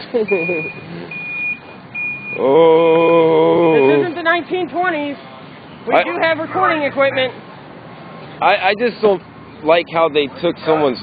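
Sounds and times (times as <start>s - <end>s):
reversing alarm beeping: 0.3s - 2.4s.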